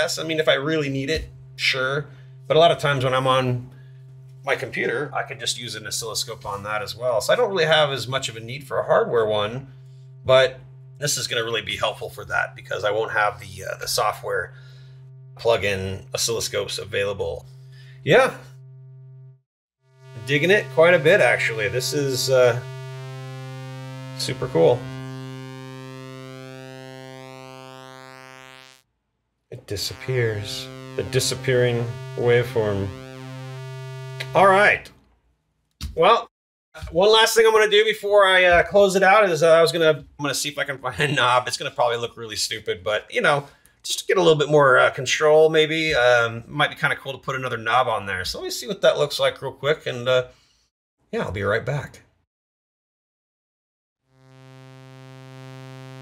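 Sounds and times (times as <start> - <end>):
low buzzy synthesizer note: 0.0 - 28.8, 29.6 - 34.8, 54.1 - 56.0.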